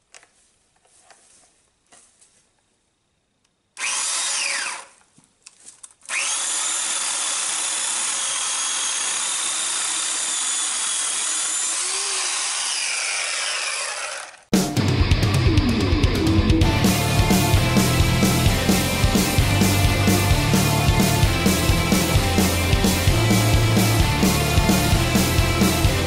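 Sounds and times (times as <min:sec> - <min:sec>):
small chainsaw cutting branch: 0:03.8 - 0:05.0, 0:06.0 - 0:14.5.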